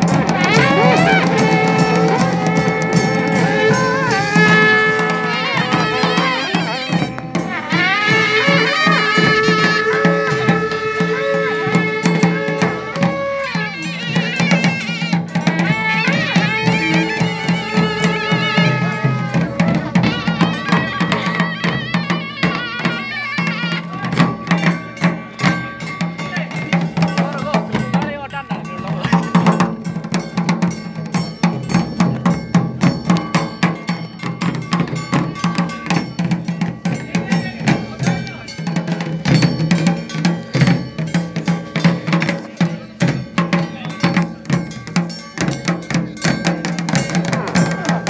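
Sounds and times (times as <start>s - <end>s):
wavering wind instrument melody: 0.0s - 30.1s
clanking metallic percussion: 0.0s - 48.0s
fast drum beats: 0.0s - 48.0s.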